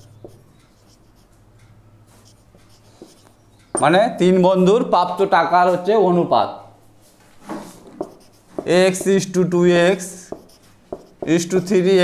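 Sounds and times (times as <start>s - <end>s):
marker scratching on whiteboard: 0.0s - 1.5s, 2.1s - 3.9s, 7.4s - 12.0s.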